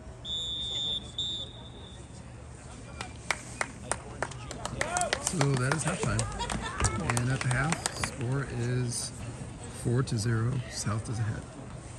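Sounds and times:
voices: 0.0s - 11.9s
referee's whistle blasts: 0.2s - 2.1s
sharp claps: 3.0s - 8.4s.

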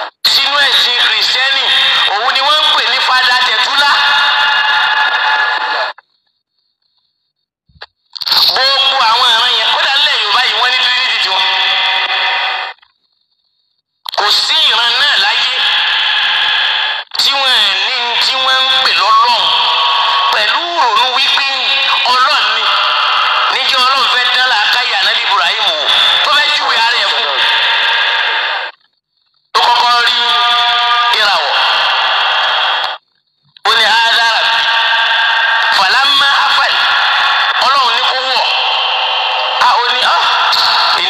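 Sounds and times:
person speaking over radio: 0.0s - 4.5s, 8.2s - 12.7s, 14.1s - 16.3s, 17.1s - 28.7s, 29.6s - 31.9s, 33.6s - 34.6s, 35.6s - 37.0s, 37.6s - 38.7s, 39.4s - 41.0s.

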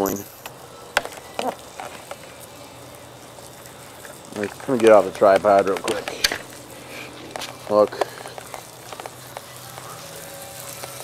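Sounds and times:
fire pops: 0.0s - 11.0s
wood fire crackling: 0.0s - 11.0s.

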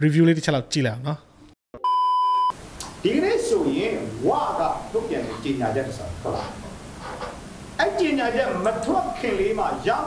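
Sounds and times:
censor beep tone: 1.8s - 2.6s.

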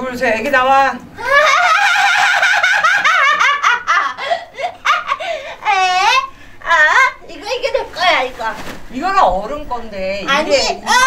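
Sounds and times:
woman laughing loudly: 1.2s - 6.3s.

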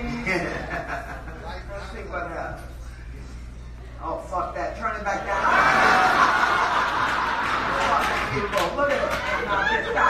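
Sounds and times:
audience laughing: 5.2s - 10.0s.

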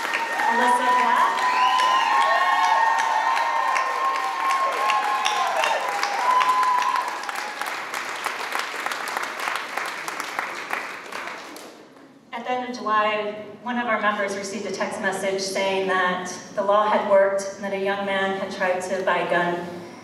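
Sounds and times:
audience applauding: 0.0s - 11.8s
whoops: 0.1s - 7.7s.

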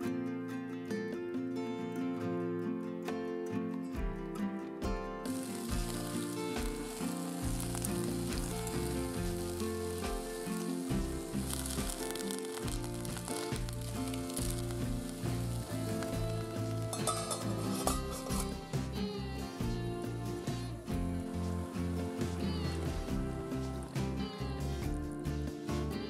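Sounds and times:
background music: 0.0s - 26.0s
food sizzling in a frying pan: 5.2s - 26.0s.

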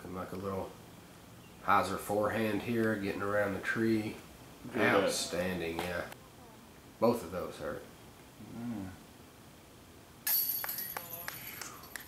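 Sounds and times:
disc striking metal chains: 10.2s - 11.9s
light chain clinks: 10.2s - 12.0s.

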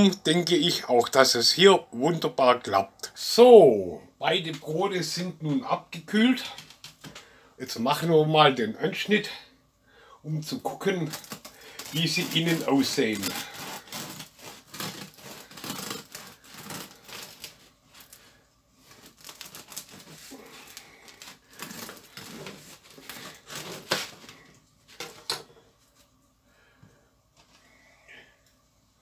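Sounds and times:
bread knife sawing crust: 11.0s - 24.4s.

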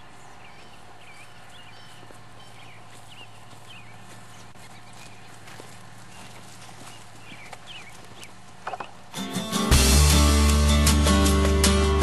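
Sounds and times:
horse hooves clip-clopping: 0.0s - 9.3s
steady low hum: 0.0s - 9.6s.

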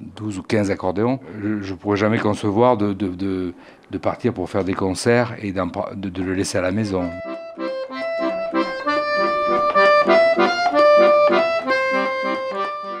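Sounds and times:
accordion playing: 6.4s - 13.0s.

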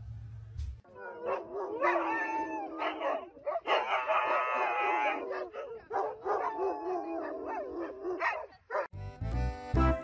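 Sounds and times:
husky howling: 0.9s - 8.8s.

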